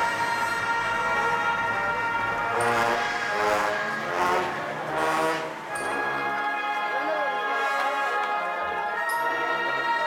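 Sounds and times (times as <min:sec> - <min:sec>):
brass band playing funeral march: 0:00.0 - 0:10.0.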